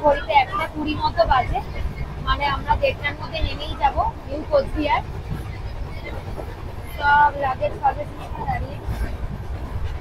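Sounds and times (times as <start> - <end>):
train rumbling on track: 0.0 - 10.0.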